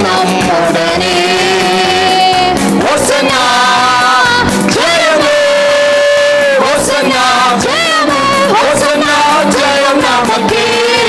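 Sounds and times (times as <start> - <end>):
backing music: 0.0 - 11.0
man singing into a microphone: 0.0 - 11.0.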